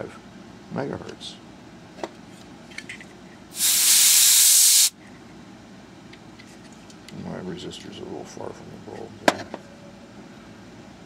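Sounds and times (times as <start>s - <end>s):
air jet hissing: 3.5s - 4.9s.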